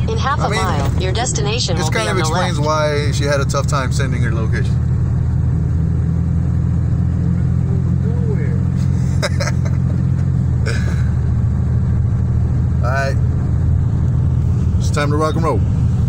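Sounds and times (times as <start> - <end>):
truck driving on dirt road: 0.0 - 16.0.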